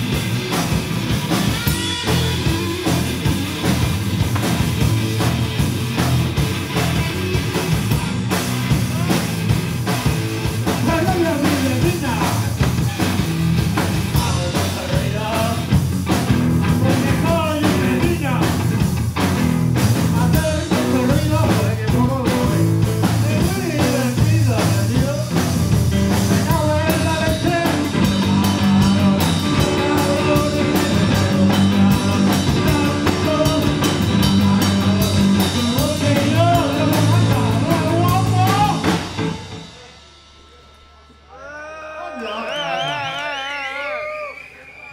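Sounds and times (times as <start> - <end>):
electric guitars: 0.0 - 39.8
drum kit: 0.0 - 41.3
person singing: 20.1 - 38.9.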